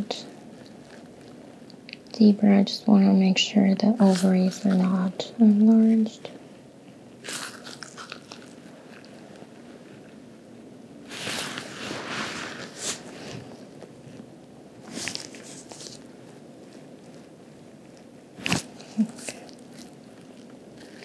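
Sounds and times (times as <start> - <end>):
gloved hands rustling on fabric: 4.0 - 5.2, 7.2 - 10.2, 11.0 - 21.0.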